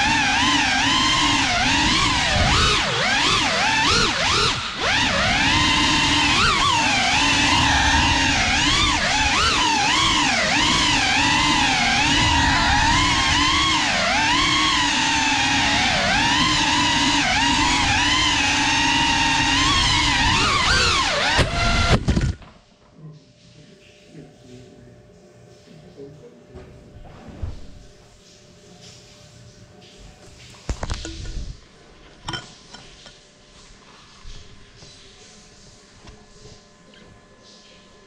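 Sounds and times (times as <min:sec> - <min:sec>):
drone motors whining: 0:00.0 - 0:22.4.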